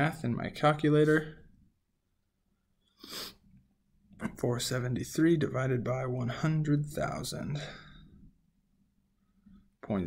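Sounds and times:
faint breath: 2.9 - 3.5, 7.6 - 8.3.

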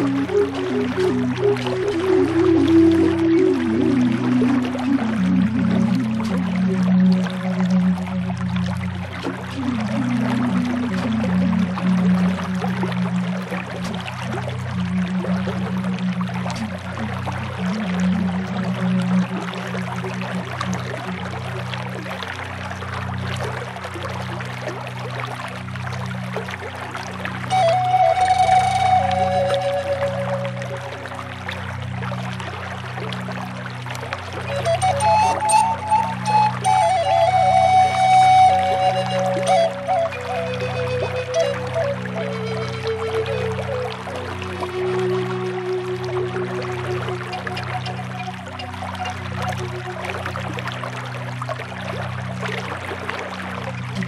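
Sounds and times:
higher alto flute phrases: 0.0 - 8.4, 27.5 - 31.4, 34.4 - 50.1
low bass flute notes: 0.0 - 21.9, 27.4 - 32.4, 34.3 - 51.0
creek water flowing: 0.0 - 54.0.

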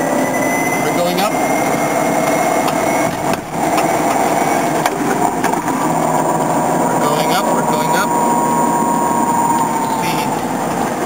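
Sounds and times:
electric motor whining under load: 0.0 - 11.0
road noise: 0.0 - 11.0.

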